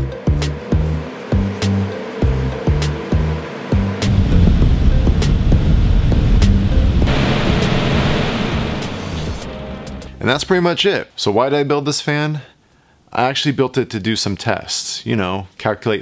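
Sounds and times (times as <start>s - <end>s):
background music with steady beat: 0.0s - 10.5s
rush of air from large fan: 0.6s - 9.6s.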